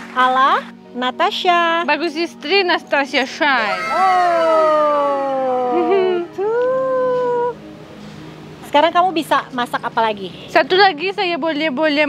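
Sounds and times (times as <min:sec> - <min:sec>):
woman's drawn-out vocal ohhh: 0:03.7 - 0:07.2.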